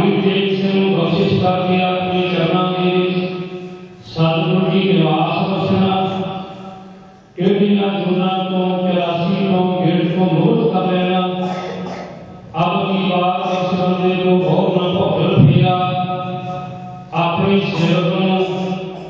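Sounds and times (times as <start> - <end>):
man chanting a prayer: 0.0 - 6.8, 7.4 - 11.9, 12.5 - 19.0.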